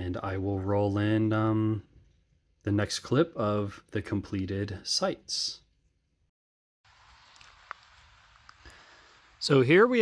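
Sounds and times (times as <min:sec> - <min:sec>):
faint outdoor ambient hiss: 0:06.9 - 0:10.0.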